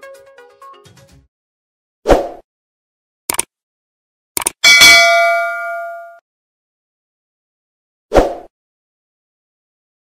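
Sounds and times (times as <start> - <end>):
double mouse click: 4.4 - 4.6
notification bell ding: 4.6 - 6.2.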